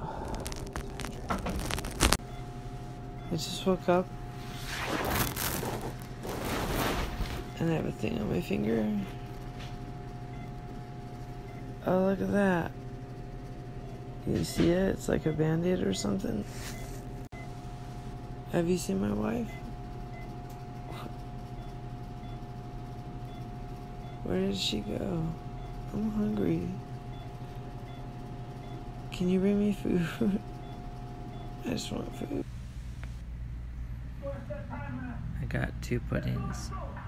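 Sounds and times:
constant mid-pitched tone: 0.0 - 37.0
room hum: 0.0 - 37.0
microphone rubbing against fabric: 4.3 - 7.6.

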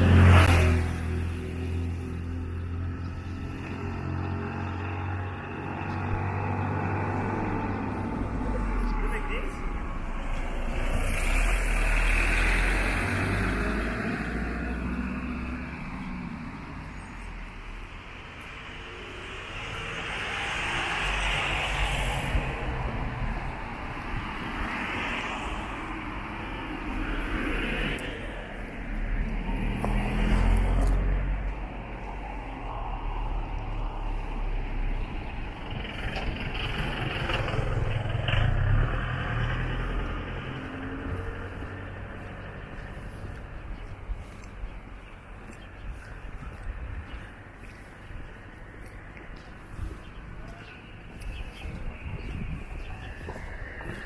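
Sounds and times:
cars passing by: 0.0 - 54.0
steady low traffic rumble: 0.0 - 54.0.

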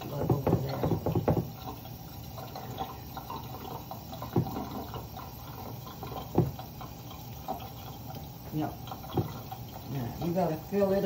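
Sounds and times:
tap running into steel sink: 0.0 - 1.8, 3.6 - 5.3, 6.0 - 7.6, 8.4 - 9.7.

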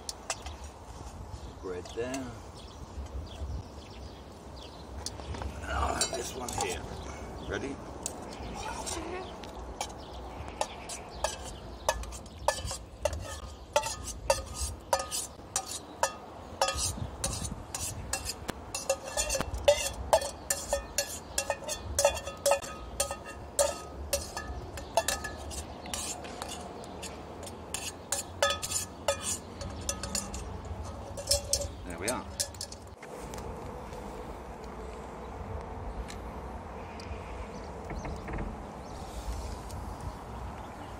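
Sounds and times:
metal spoon clinking on pot: 10.6 - 32.9.

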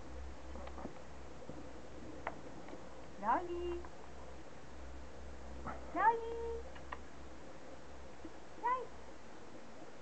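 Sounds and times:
woman calling cats: 3.2 - 3.8, 5.9 - 6.7, 8.6 - 9.0.

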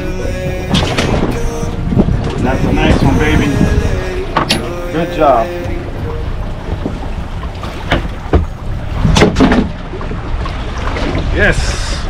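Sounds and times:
water around a boat: 0.0 - 12.0
wind rumbling on microphone: 0.0 - 12.0.

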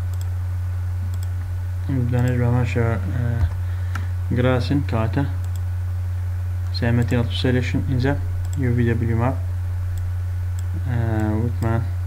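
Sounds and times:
low electrical hum: 0.0 - 12.0
computer mouse clicks: 0.1 - 0.3, 1.1 - 1.5, 5.4 - 5.6, 6.6 - 7.2, 8.4 - 8.6, 10.0 - 11.8
person speaking: 1.8 - 3.6, 4.2 - 5.4, 6.7 - 9.5, 10.6 - 12.0.

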